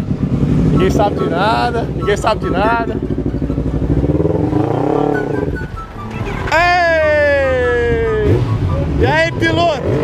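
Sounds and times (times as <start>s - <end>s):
motorcycle engine revving: 0.0s - 6.7s, 7.5s - 10.0s
motorcycle engines running: 0.0s - 10.0s
engine note falling in pitch: 0.7s - 10.0s.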